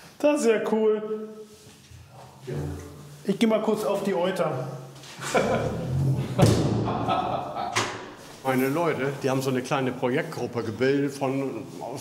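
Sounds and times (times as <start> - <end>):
door shutting with thump: 6.3 - 6.9, 7.7 - 8.2
sharp knock: 6.4 - 7.1.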